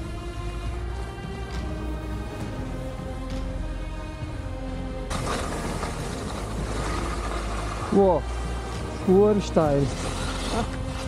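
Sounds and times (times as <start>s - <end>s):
skis scraping over snow: 5.1s - 11.0s.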